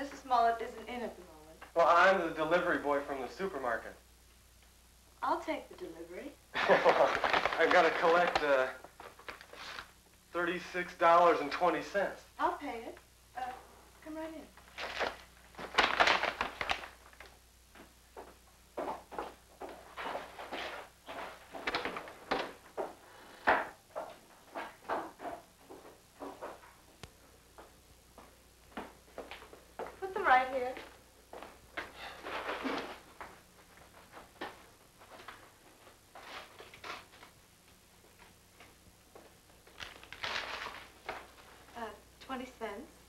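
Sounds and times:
paper bag rustling: 0:06.6 - 0:09.9, 0:14.7 - 0:17.3, 0:39.6 - 0:41.7.

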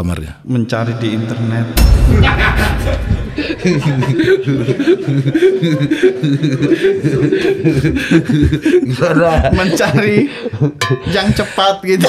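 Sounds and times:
men chuckling: 0:02.1 - 0:11.6.

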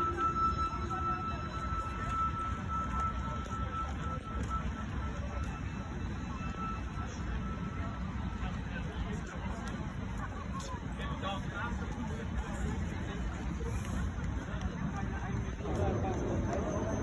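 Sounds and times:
crowd noise: 0:00.0 - 0:17.0
low rumble: 0:15.1 - 0:17.0.

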